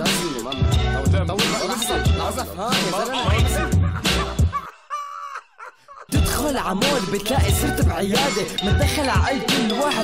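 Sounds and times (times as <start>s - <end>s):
man rapping: 0.0s - 4.4s, 6.1s - 10.0s
heavy bass-driven beat: 0.0s - 4.6s, 6.1s - 10.0s.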